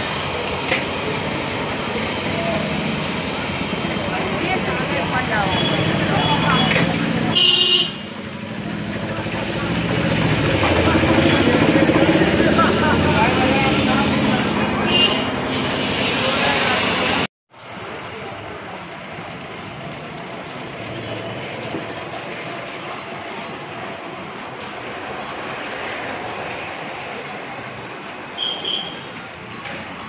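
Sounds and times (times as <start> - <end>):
many voices talking: 0.0 - 7.3, 8.5 - 15.0
vehicle traffic: 0.0 - 30.0
car horn toot: 5.6 - 8.0, 28.4 - 29.1.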